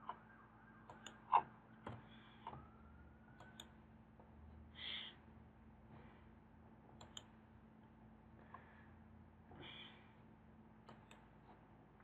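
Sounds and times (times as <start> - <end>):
low steady hum: 0.0 - 12.0
computer mouse and keyboard clicks: 0.9 - 2.6, 3.4 - 3.7, 7.0 - 7.3, 10.9 - 11.3.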